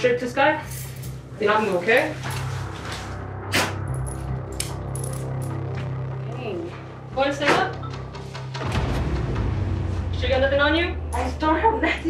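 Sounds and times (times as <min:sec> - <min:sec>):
low music drone: 0:00.0 - 0:12.0
metal pieces clinking: 0:04.0 - 0:05.6.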